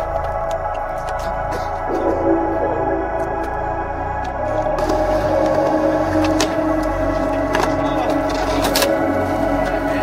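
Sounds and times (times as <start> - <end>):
ambient electronic music: 0.0 - 10.0.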